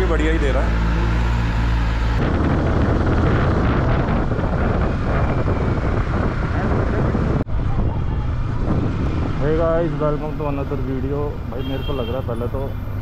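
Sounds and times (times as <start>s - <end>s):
wind rushing over microphone: 1.5s - 10.8s.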